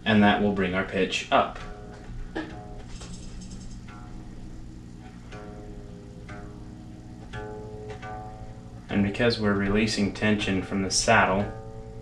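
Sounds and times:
electric guitar string plucked: 0:00.6 - 0:12.0.

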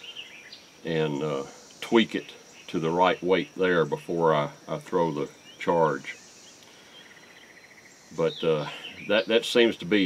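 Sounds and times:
faint rapid insect trill: 0:00.0 - 0:10.0
insects high-pitched drone: 0:00.0 - 0:10.0.

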